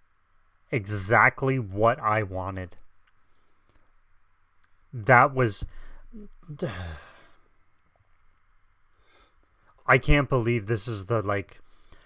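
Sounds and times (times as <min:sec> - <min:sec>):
man sighing: 0:05.6 - 0:07.5.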